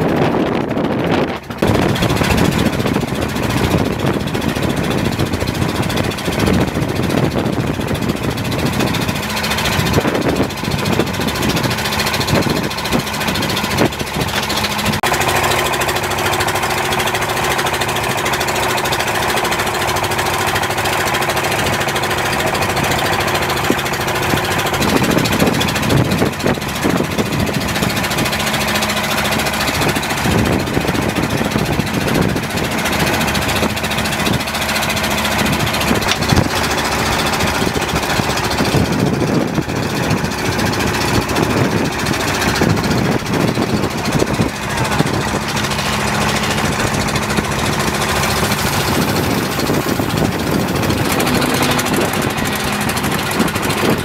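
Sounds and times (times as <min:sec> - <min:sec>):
boat engine running: 0:00.0 - 0:54.0
sea noise: 0:00.0 - 0:54.0
wind: 0:00.0 - 0:54.0.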